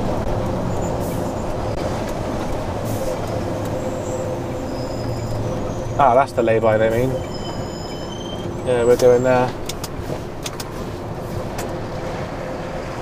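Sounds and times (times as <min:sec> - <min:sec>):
diesel engine running: 0:00.0 - 0:13.0.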